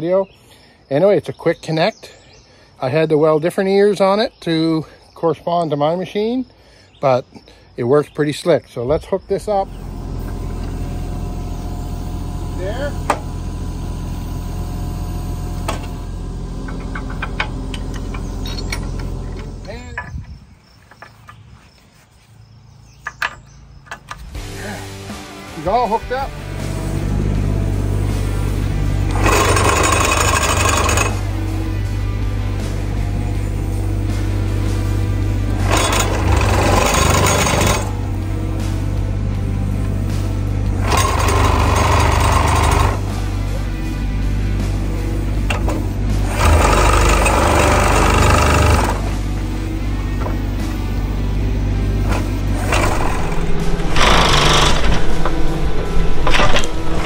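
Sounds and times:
excavator engine idling: 9.4s - 20.0s, 23.8s - 57.0s
plate compactor vibrating on gravel: 9.6s - 20.3s, 29.0s - 31.6s, 35.5s - 38.6s, 39.9s - 43.4s, 45.4s - 49.2s, 52.0s - 57.0s
background music: 24.2s - 57.0s.

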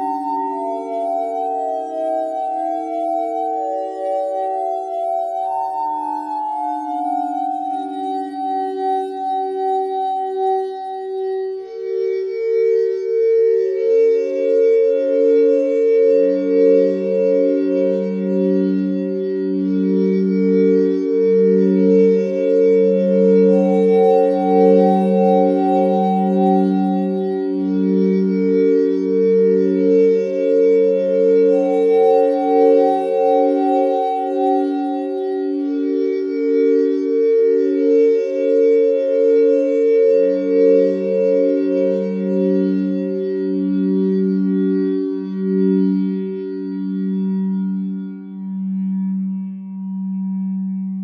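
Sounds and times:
pulsing synthesizer drone: 0.0s - 51.0s.

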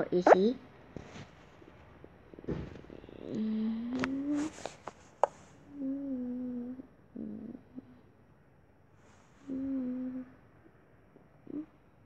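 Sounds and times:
girl humming: 5.7s - 7.9s, 9.5s - 10.4s.

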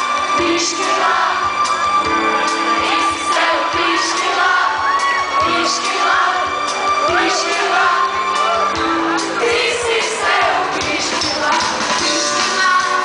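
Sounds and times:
audience voices and whoops: 0.0s - 10.8s
live band playing: 0.0s - 13.0s
person singing: 2.8s - 13.0s.

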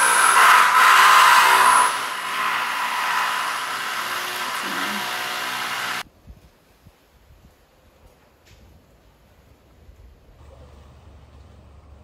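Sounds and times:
small engine droning: 0.0s - 6.0s.

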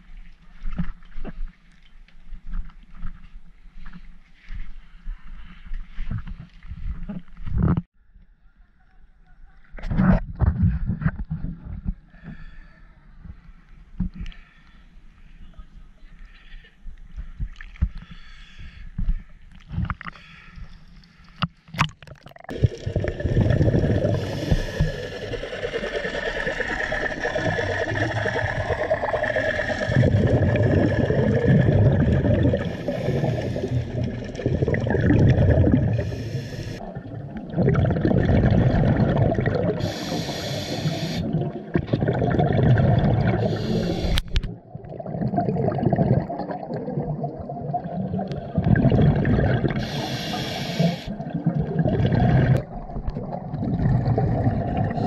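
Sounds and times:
exhaust bubbles rumbling: 22.2s - 40.1s, 40.8s - 50.2s, 51.1s - 55.0s.

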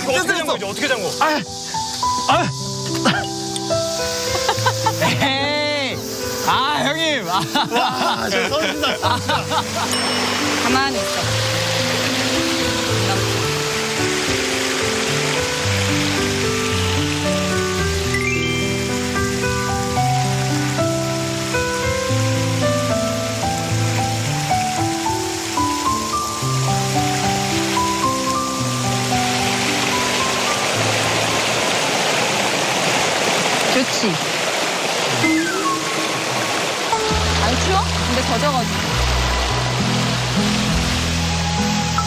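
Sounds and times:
soft background music: 0.0s - 32.5s, 35.1s - 42.0s
stream water flowing: 0.0s - 42.0s.

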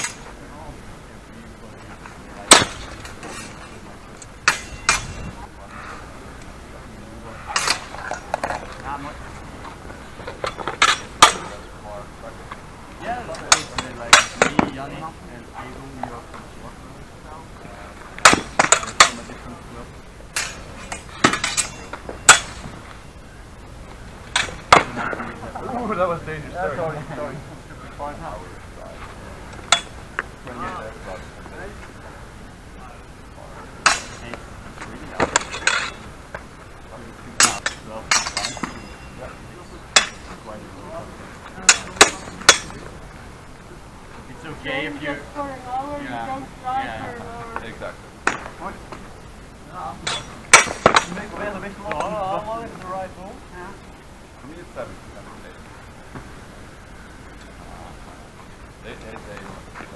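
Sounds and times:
steel blades clashing: 0.0s - 0.3s, 4.4s - 5.3s, 7.5s - 8.1s, 10.4s - 11.6s, 20.3s - 22.7s, 33.8s - 34.3s, 35.2s - 36.0s, 37.4s - 39.2s, 40.0s - 40.4s, 41.6s - 42.8s, 50.0s - 51.2s.

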